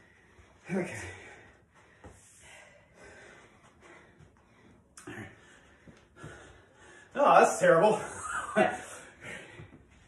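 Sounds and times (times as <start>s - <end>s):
people breathing heavily: 0.0s - 7.2s, 8.8s - 10.0s.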